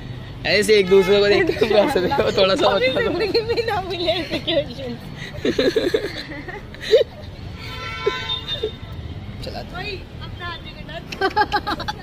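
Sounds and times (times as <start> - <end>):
street traffic rumble: 0.0 - 12.0
vehicle horn: 0.5 - 3.1, 7.6 - 8.9.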